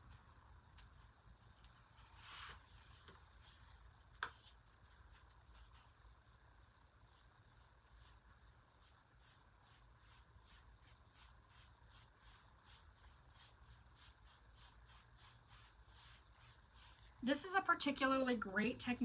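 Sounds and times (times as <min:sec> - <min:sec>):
dry paintbrush strokes on wood: 0:00.0 - 0:17.2.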